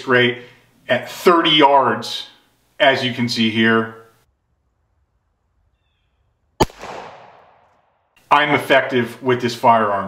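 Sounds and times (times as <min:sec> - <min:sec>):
pistol shot echoing: 0:06.6 - 0:08.0.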